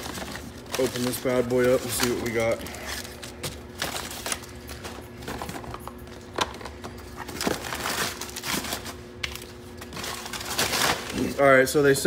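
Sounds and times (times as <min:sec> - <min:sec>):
packing paper crinkling: 0:00.0 - 0:11.8.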